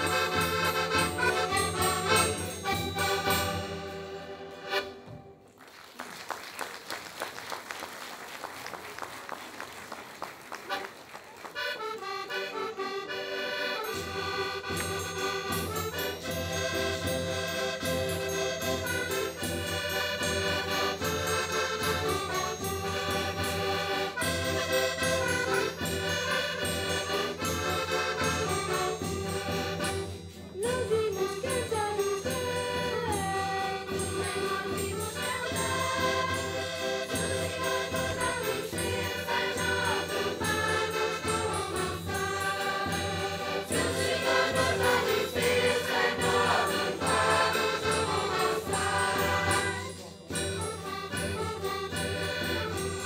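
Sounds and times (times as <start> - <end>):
accordions playing: 0.0 - 5.5, 10.5 - 53.0
folk band playing: 0.0 - 6.3, 10.2 - 53.0.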